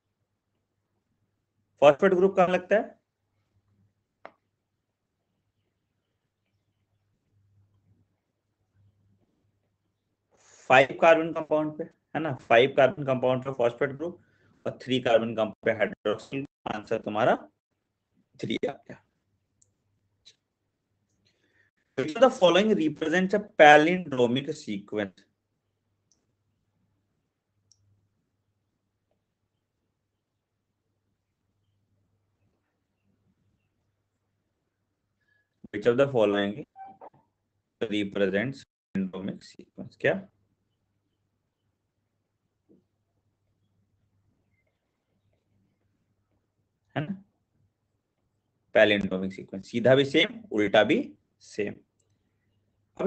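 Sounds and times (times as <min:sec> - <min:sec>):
person speaking: 0:01.8 - 0:03.0, 0:10.6 - 0:17.5, 0:18.4 - 0:19.0, 0:22.0 - 0:25.2, 0:35.7 - 0:37.1, 0:37.8 - 0:40.3, 0:48.8 - 0:51.8.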